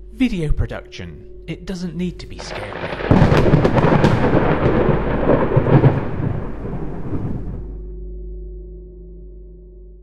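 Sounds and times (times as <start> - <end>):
thunderclap crack and rumble: 2.4 - 7.8.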